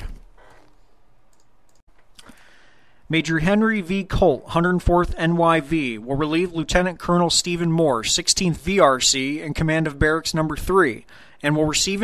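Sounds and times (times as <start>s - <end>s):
microphone room noise: 0.0s - 1.3s.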